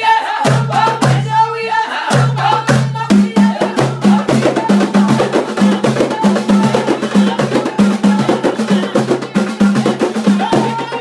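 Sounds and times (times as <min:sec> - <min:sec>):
women singing: 0:00.0 - 0:11.0
frame drums playing fast rhythm: 0:00.4 - 0:01.5, 0:02.1 - 0:11.0.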